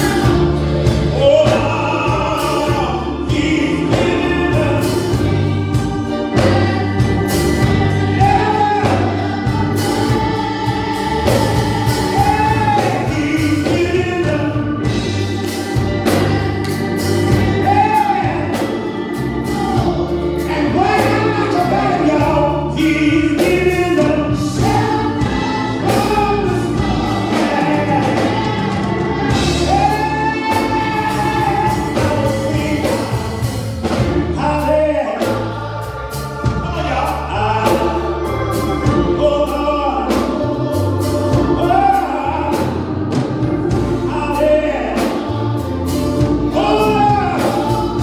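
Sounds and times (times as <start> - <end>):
gospel choir singing: 0.0 - 48.0
steady bass line: 0.0 - 48.0.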